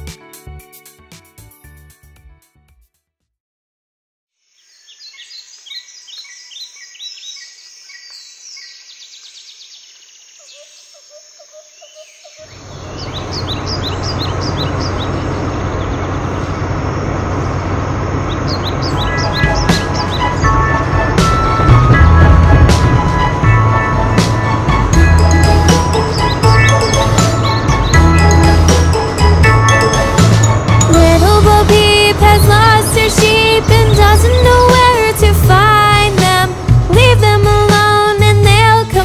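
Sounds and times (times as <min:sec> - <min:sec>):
birds chirping: 0:04.5 - 0:35.1
loud steady rumbling: 0:12.6 - 0:38.8
musical notes: 0:18.8 - 0:37.6.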